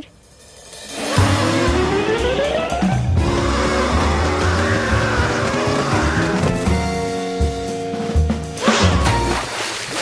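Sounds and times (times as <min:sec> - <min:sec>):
cartoon music with stepped notes: 0:01.2 - 0:07.1.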